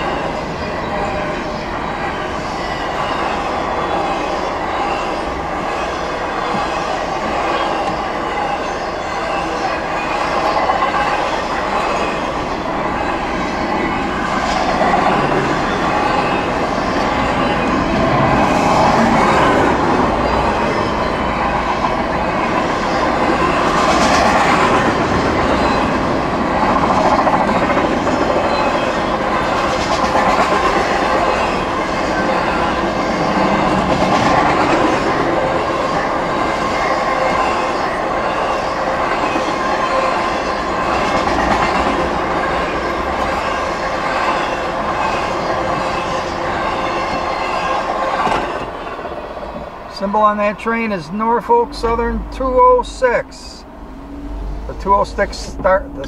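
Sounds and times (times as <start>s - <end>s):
freight train rolling past: 0.0s - 56.0s.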